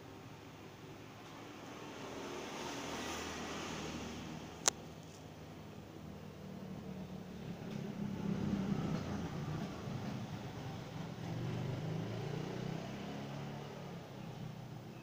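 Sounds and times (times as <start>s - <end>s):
low engine rumble: 4.4s - 11.9s.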